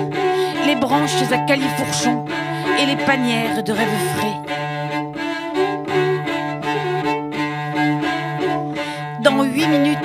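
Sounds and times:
cello playing: 0.0 - 10.0.

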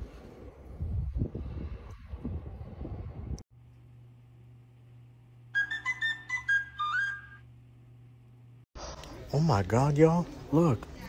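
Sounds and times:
high whistle-like melody: 5.5 - 7.5.

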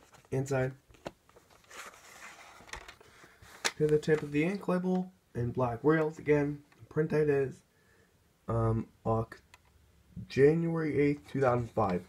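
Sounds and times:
soft plastic rustling: 0.0 - 5.1.

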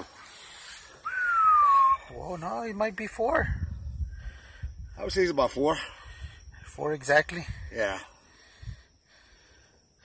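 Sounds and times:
whistle sliding down in pitch: 1.0 - 2.1.

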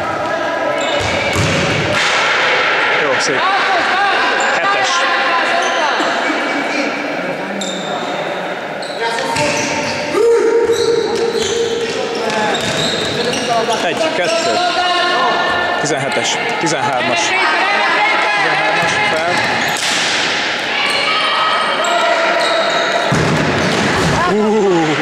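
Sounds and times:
shoes squeaking on court: 0.2 - 1.4, 8.8 - 14.8
players shouting: 1.9 - 6.2, 10.1 - 25.0.

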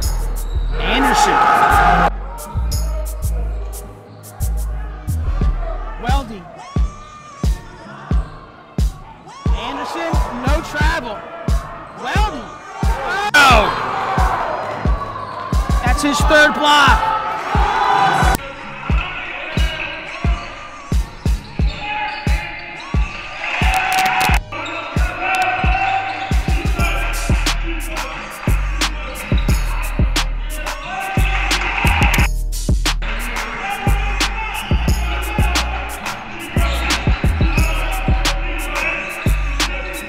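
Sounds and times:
sneakers squeaking: 0.0 - 2.0, 2.7 - 5.3, 6.1 - 16.4, 18.5 - 27.5, 28.1 - 32.3, 33.1 - 40.0
music with heavy bass beat: 0.0 - 7.6, 23.0 - 40.0
voices: 33.0 - 40.0.

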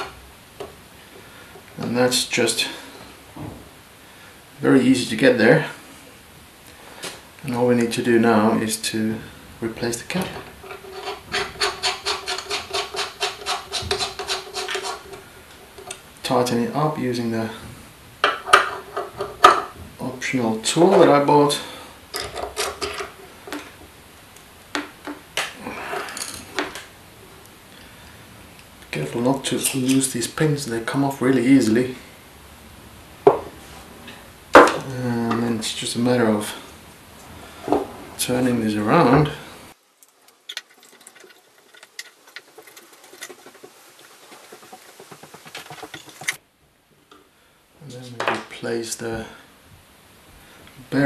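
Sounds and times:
metal clicks and scrapes: 10.2 - 16.0, 40.0 - 46.4
short metal rub: 10.5 - 15.8.

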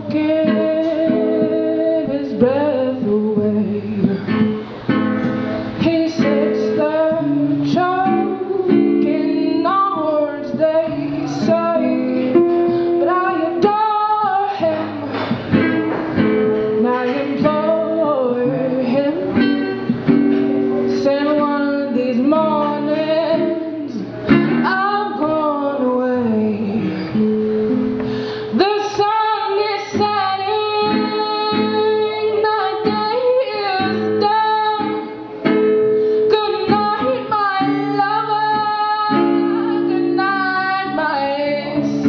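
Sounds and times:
guitar: 0.0 - 42.0.

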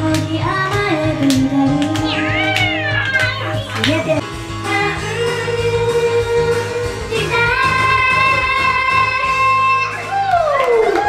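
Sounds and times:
pop backing track: 0.0 - 11.0
women singing karaoke: 0.0 - 11.0.

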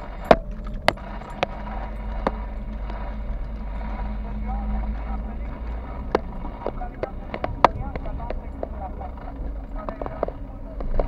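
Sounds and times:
car interior road rumble: 0.0 - 11.0
sharp rattles: 0.0 - 11.0.

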